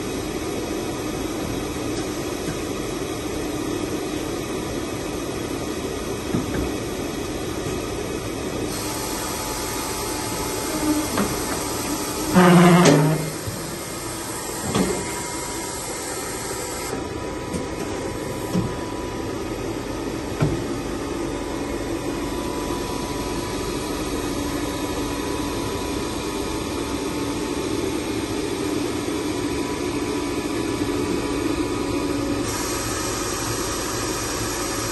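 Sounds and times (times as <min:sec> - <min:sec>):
electric machinery hum: 0:00.0 - 0:34.9.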